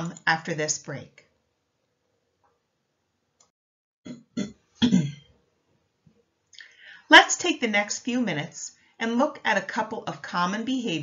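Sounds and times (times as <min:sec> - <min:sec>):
woman clearing throat: 0:04.1 - 0:05.3.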